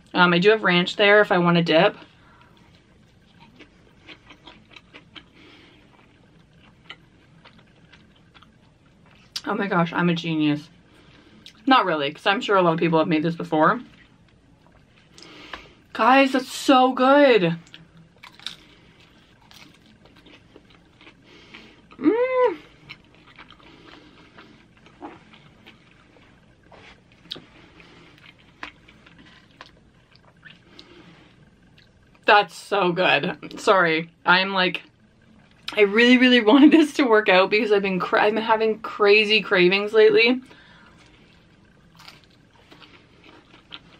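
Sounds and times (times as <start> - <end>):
crunchy chewing: 2.3 - 9.4, 17.6 - 22.0, 22.6 - 32.2, 40.7 - 43.9.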